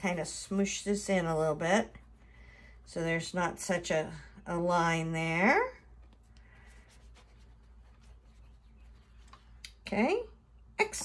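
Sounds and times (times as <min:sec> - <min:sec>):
paintbrush rubbing on paper: 0:00.0 - 0:03.4, 0:06.0 - 0:09.6
low steady hum: 0:00.0 - 0:11.0.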